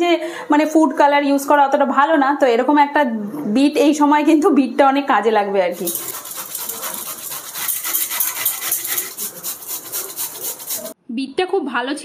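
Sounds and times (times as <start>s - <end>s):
grating on metal hand grater: 5.8s - 11.0s.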